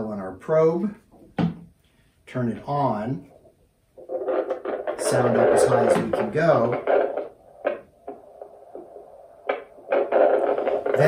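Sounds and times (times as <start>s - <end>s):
low speaker hum: 2.4s - 11.0s.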